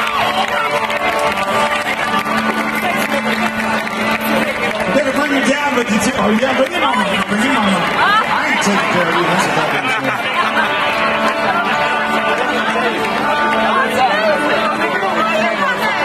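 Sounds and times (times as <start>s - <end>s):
crowd noise: 0.0s - 16.0s
people talking nearby: 0.6s - 16.0s.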